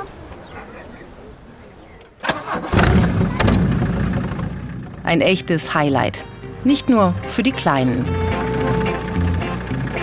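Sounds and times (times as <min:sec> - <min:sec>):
tractor engine starting and running: 0:02.2 - 0:10.0.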